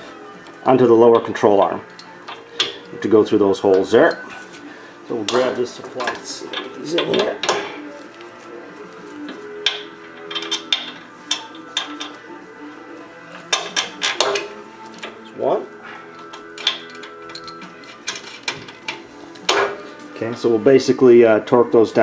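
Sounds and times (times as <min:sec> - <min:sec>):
background music: 0:00.0 - 0:22.0
metal clinks and knocks: 0:09.6 - 0:12.2, 0:16.2 - 0:19.9.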